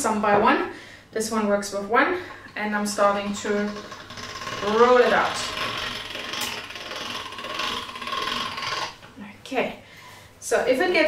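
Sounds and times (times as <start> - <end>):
pasta machine gears and rollers: 3.0 - 9.1.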